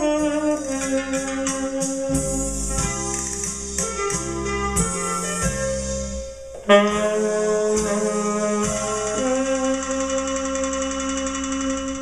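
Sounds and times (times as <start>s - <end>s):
tenor saxophone long note: 6.6s - 10.5s.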